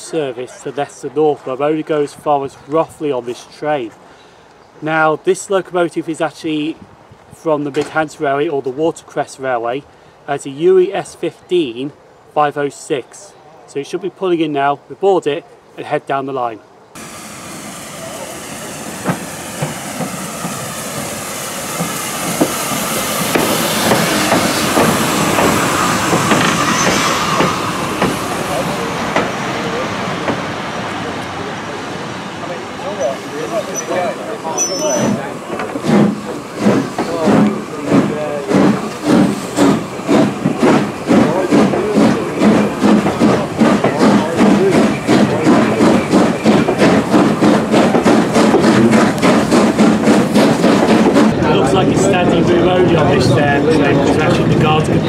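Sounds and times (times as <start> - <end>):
steam hissing: 17.0 - 52.1
steam locomotive exhaust beats: 17.0 - 55.0.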